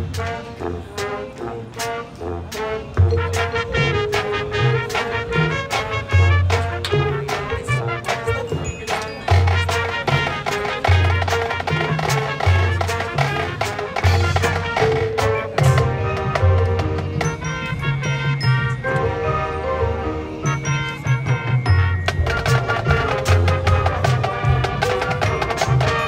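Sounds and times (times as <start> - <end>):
marching band playing: 0.0 - 26.0.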